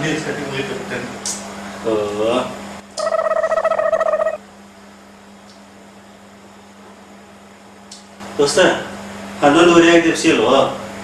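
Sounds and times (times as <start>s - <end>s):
steady low hum: 0.6s - 9.5s
pulsing buzzing tone: 3.0s - 4.4s.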